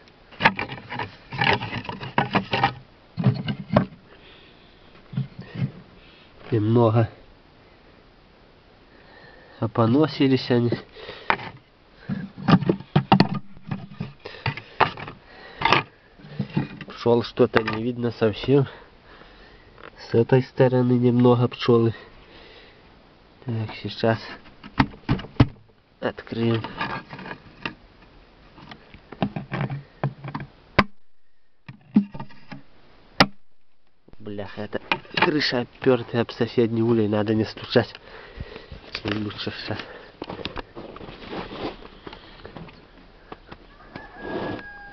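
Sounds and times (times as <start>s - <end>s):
wooden frames knocking and scraping: 0.4s - 4.1s, 5.0s - 5.9s, 10.7s - 17.9s, 24.4s - 25.7s, 26.4s - 27.8s, 28.6s - 36.1s
sharp wooden knocks: 29.2s - 31.0s.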